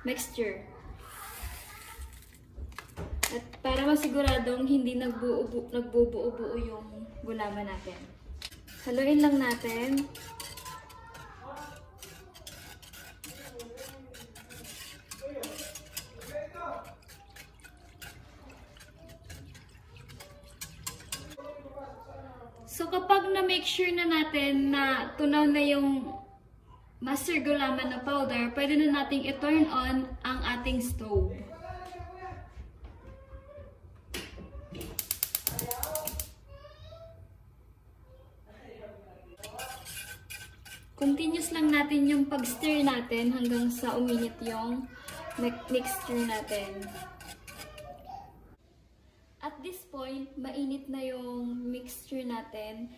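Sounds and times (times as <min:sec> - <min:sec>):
wire whisk scraping metal saucepan: 0:08.4 - 0:21.5, 0:39.4 - 0:48.2
gas stove igniter clicking: 0:35.0 - 0:36.3.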